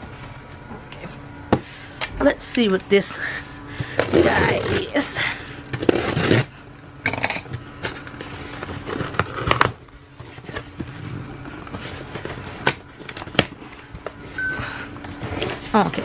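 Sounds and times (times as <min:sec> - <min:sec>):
box cutter slitting tape: 0:05.8 - 0:06.5.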